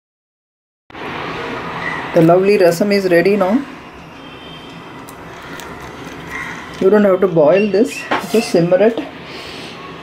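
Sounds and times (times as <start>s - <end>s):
woman speaking: 2.2s - 3.7s, 6.8s - 9.1s.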